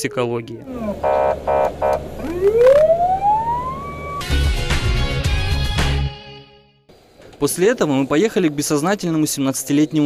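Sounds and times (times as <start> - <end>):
moving vehicle hum: 0.0 - 4.3
ambulance siren rising: 0.0 - 4.5.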